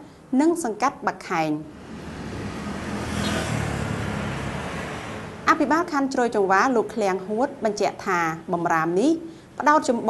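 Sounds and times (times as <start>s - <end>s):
road traffic passing: 1.4s - 6.2s.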